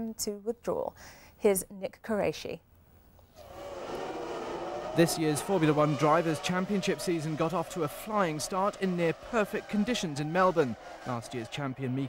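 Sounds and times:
many race car engines: 3.4 - 12.0.

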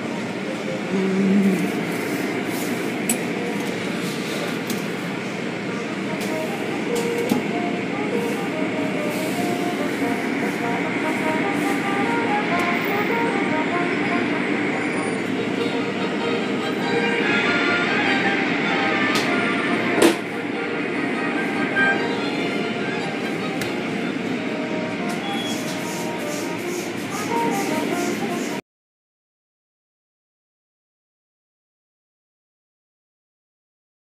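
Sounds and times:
machinery running: 0.0 - 28.6.

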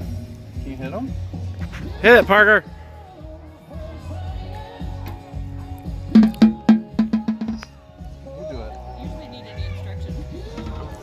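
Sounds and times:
snare drum hits: 6.2 - 7.7.

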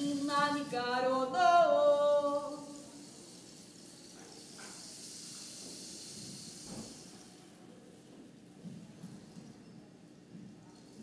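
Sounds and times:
soft high hiss: 0.0 - 8.3.

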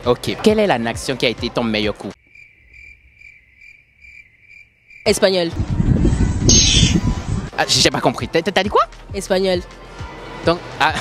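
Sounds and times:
cricket chirping: 2.2 - 5.4.

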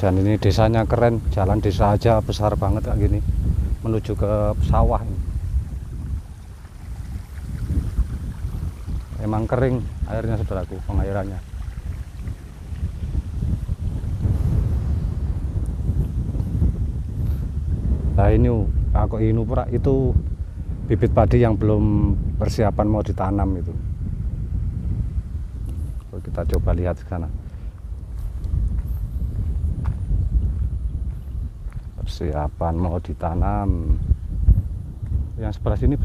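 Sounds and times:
strong wind buffeting microphone: 0.0 - 36.0.

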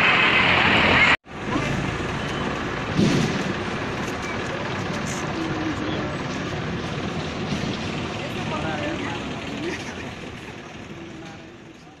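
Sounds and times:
street noise: 0.0 - 12.0
people talking indistinctly: 4.2 - 12.0.

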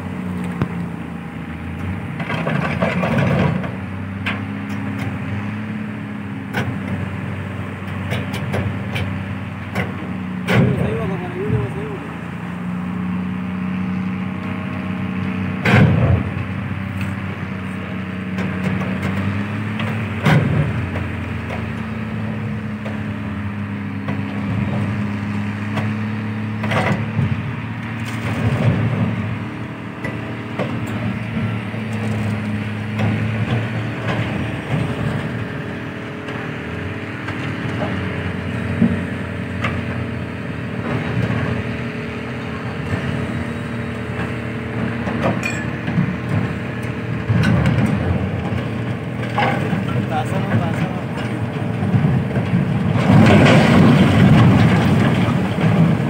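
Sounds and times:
engine droning: 0.0 - 56.0
steel banging and creaking: 44.2 - 56.0.

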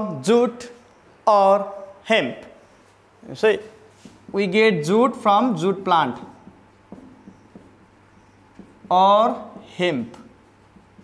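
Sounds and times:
marker writing on whiteboard: 2.6 - 11.0.

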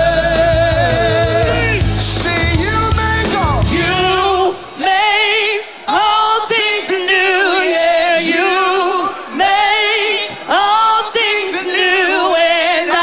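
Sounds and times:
voices singing with vibrato: 0.0 - 13.0.

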